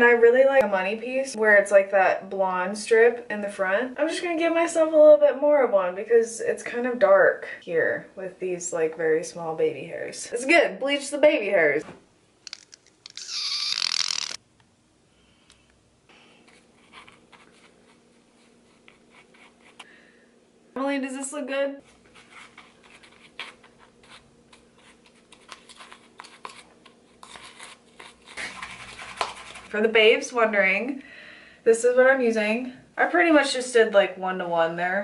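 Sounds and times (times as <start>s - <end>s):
brush scraping paste in plastic bowl: 27.2s - 29.8s.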